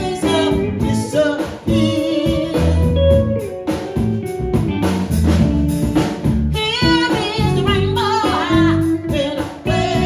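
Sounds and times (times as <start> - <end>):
woman singing into a microphone: 0.0 - 3.3, 6.5 - 10.0
drum kit: 0.0 - 10.0
electric bass: 0.0 - 10.0
electric guitar: 0.0 - 10.0.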